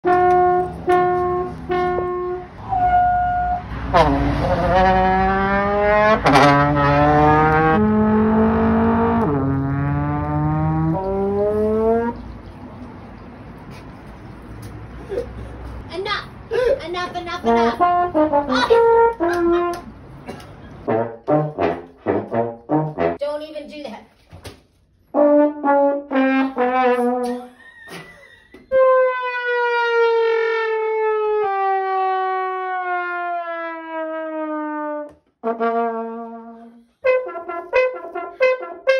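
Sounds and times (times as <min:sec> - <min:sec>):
trombone low held notes: 0:00.0 - 0:12.2, 0:20.9 - 0:23.2, 0:31.3 - 0:38.9.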